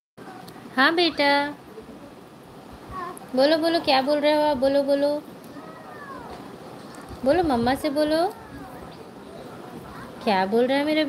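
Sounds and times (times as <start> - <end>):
woman speaking: 0.8 - 1.6, 3.3 - 5.3, 7.2 - 8.3, 10.2 - 11.0.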